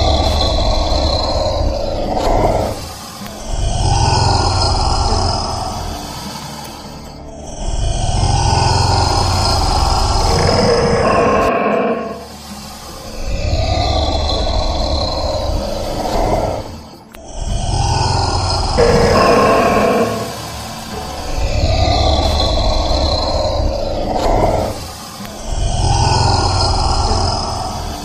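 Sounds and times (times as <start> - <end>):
lizard rasping growls: 0.0 - 6.4, 7.4 - 28.0
deep rumble: 7.5 - 12.3, 13.2 - 24.9.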